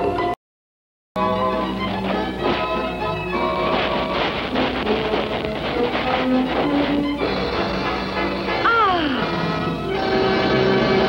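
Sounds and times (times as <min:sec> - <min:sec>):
lively cartoon music: 0:01.2 - 0:11.0.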